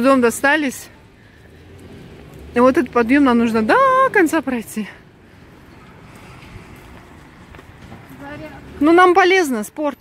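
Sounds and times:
stroller rolling on pavement: 0.0s - 10.0s
footsteps on pavement: 0.1s - 9.1s.

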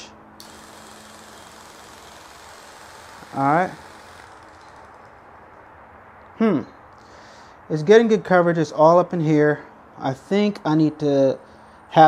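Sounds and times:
low steady hum: 0.0s - 7.0s.

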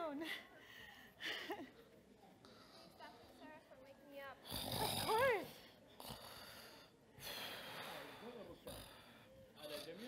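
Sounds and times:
man mock snoring: 4.4s - 5.4s.

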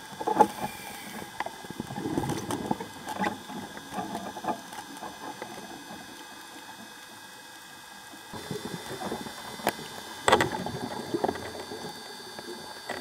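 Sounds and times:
underwater exhaled bubbles: 0.0s - 7.0s, 8.2s - 13.0s.

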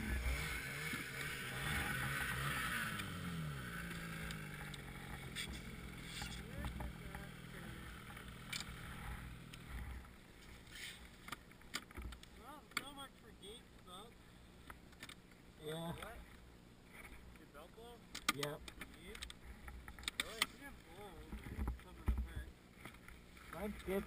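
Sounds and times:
snowmobile engine idling: 0.0s - 11.3s.

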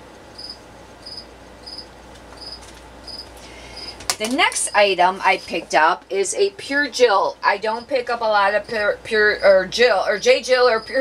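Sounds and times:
low steady hum: 0.0s - 11.0s
cricket chirping: 0.4s - 4.0s.

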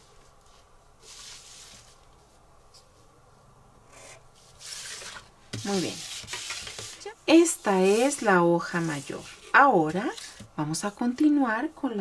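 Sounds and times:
plastic ruler scraping paper: 4.0s - 10.4s.

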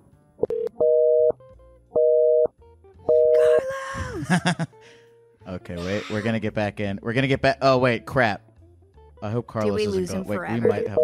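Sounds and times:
telephone busy signal: 3.1s - 3.4s, 10.6s - 11.0s.

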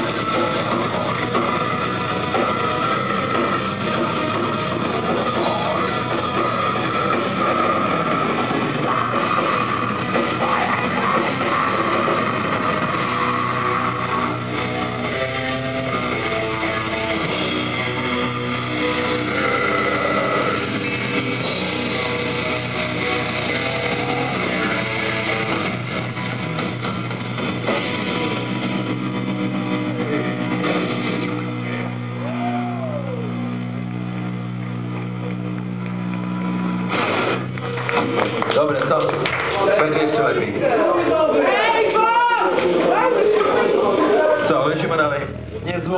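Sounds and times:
metal band with distorted guitars: 0.0s - 38.4s.

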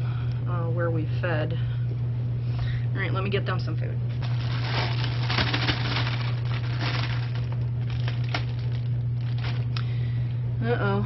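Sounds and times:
steady low hum: 0.0s - 11.0s
food scraps crinkling and rustling: 4.2s - 9.8s.

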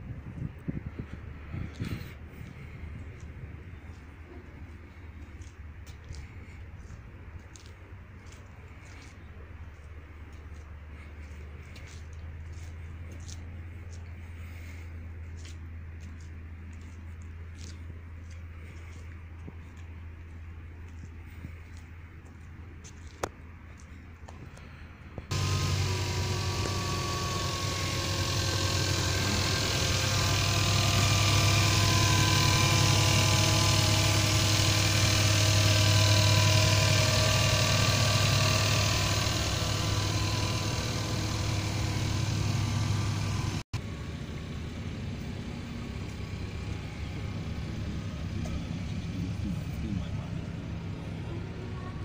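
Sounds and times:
car engine idling: 25.2s - 52.0s.

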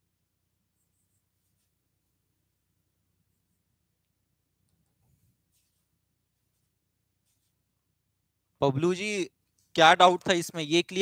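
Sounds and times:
faint scratchy rubbing: 5.0s - 7.6s.

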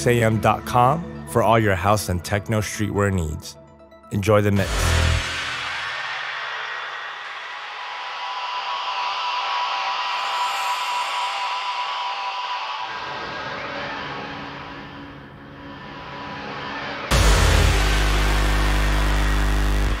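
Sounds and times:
hissing noise wash: 4.6s - 20.0s
low rumble: 13.0s - 20.0s.

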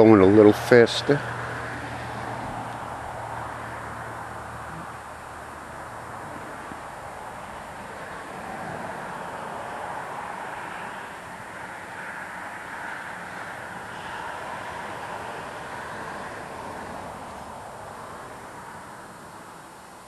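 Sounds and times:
wind: 0.0s - 20.0s.

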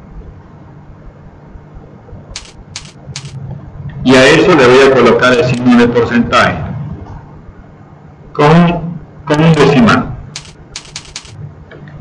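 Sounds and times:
computer mouse clicks: 2.4s - 3.4s, 10.4s - 11.4s.

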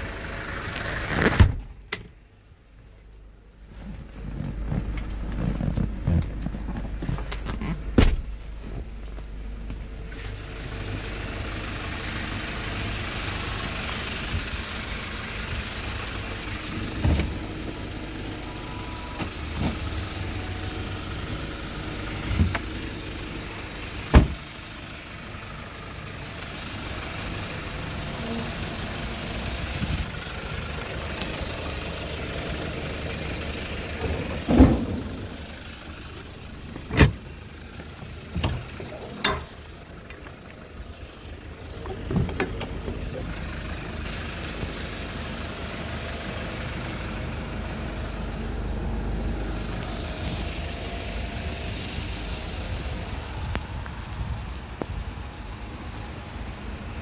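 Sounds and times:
diesel engine idling: 0.0s - 1.2s, 2.2s - 57.0s.

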